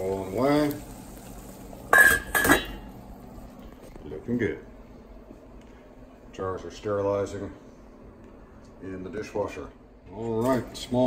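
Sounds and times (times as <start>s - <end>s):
pot lid clanking against rim: 1.9s - 2.8s.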